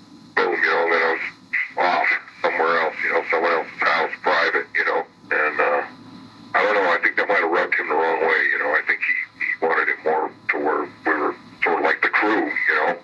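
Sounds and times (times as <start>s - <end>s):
man talking: 0.4s - 5.9s, 6.6s - 13.0s.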